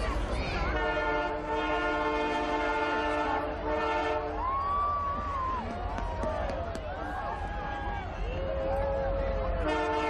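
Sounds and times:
crowd voices: 0.0s - 10.0s
rumble of passing train: 0.0s - 10.0s
locomotive air horn blast: 0.7s - 4.4s, 9.6s - 10.0s.

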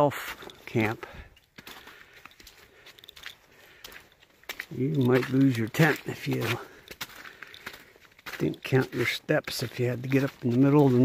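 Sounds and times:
man's voice: 0.0s - 1.2s, 4.7s - 6.7s, 8.3s - 11.0s
footsteps on slushy snow and mud: 0.0s - 11.0s.

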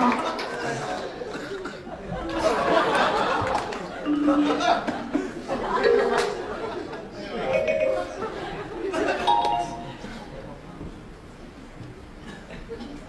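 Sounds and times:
background chatter: 0.0s - 13.0s.

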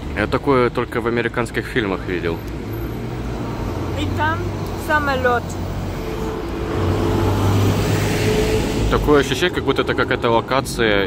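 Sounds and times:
street traffic: 0.0s - 11.0s
jet airliner roaring overhead: 5.6s - 10.2s.

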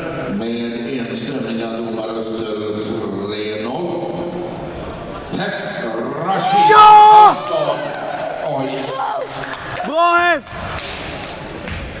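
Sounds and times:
crowd murmur in sports hall: 0.0s - 12.0s
person shouting: 6.3s - 7.4s.

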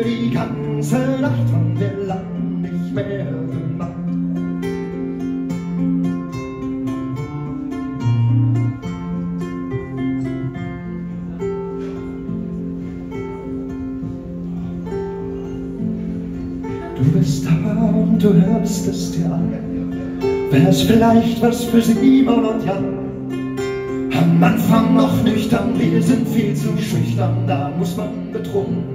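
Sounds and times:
acoustic guitars strumming: 0.0s - 28.9s.

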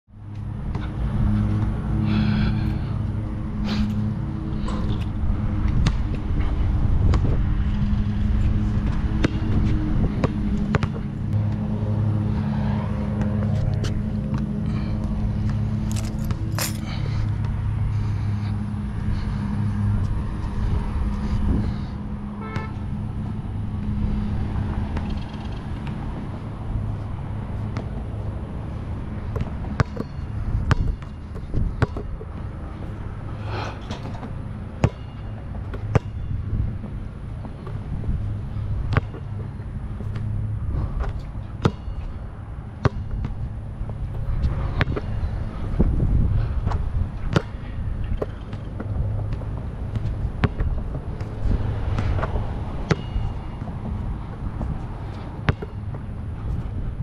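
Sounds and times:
low motor hum: 0.1s - 57.0s
wind on microphone: 4.6s - 11.5s, 19.0s - 22.1s, 44.2s - 48.1s.

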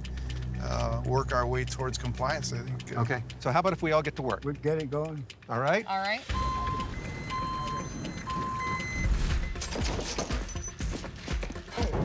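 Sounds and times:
music with a beat: 0.0s - 12.0s
truck reversing alarm beeping: 6.2s - 10.9s.

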